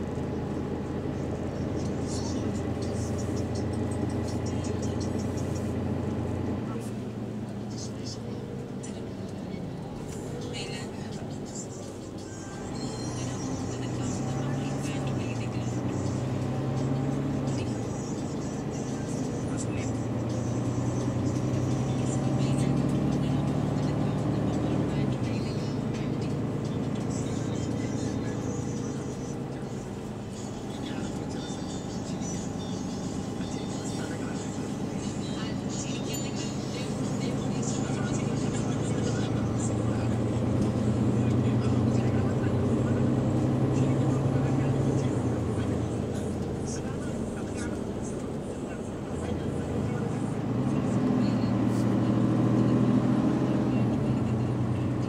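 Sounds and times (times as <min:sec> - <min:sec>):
bus engine drone: 0:00.0 - 0:55.0
passengers talking: 0:00.0 - 0:55.0.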